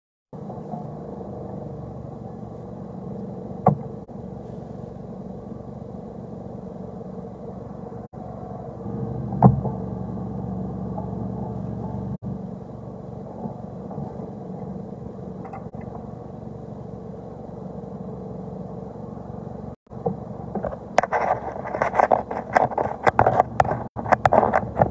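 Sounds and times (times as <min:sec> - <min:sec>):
car engine and road rumble: 0:00.3 - 0:24.9.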